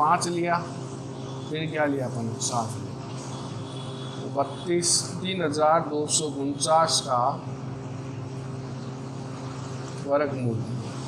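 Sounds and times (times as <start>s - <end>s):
low mechanical hum with hiss: 0.0s - 11.0s.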